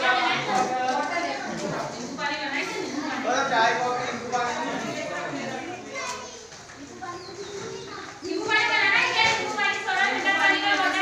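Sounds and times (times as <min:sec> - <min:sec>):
background voices talking: 0:00.0 - 0:11.0.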